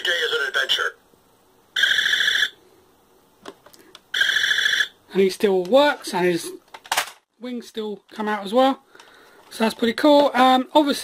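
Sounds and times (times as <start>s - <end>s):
toy electronic laser buzz: 1.8s - 2.6s, 4.2s - 4.9s.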